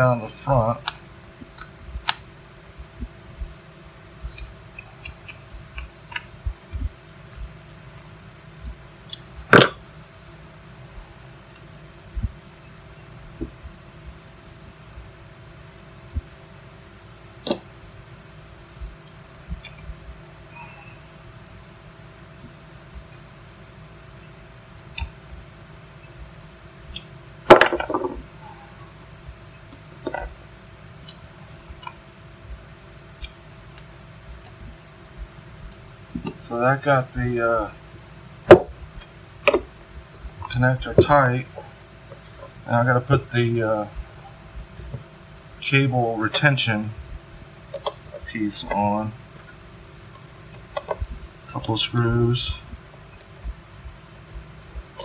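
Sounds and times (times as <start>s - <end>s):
faint steady hum: 0.0s - 55.0s
small clicks and knocks of plug: 47.7s - 48.0s.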